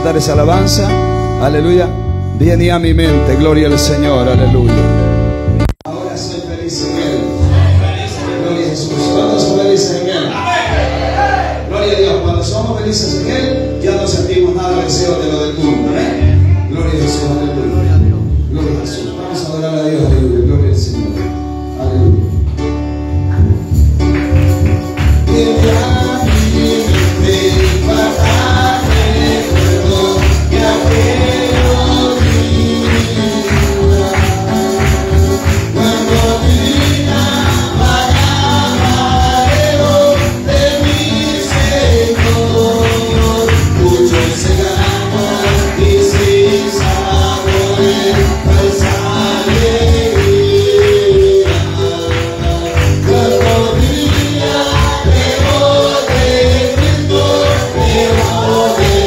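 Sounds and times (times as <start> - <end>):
bass and percussion beat: 0.0 - 5.7, 21.9 - 59.0
band playing praise song: 0.0 - 59.0
tambourine: 23.3 - 59.0
voices singing: 25.2 - 59.0.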